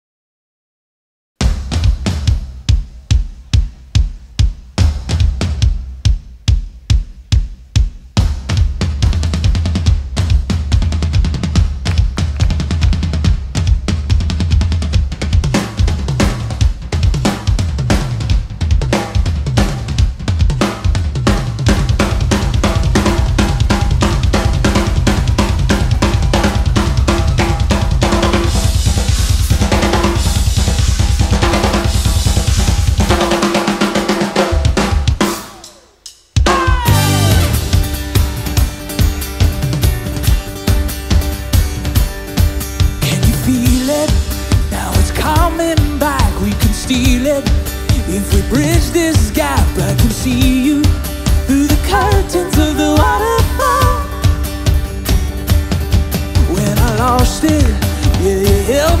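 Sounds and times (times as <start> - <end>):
drum kit solo: 1.4 - 59.0.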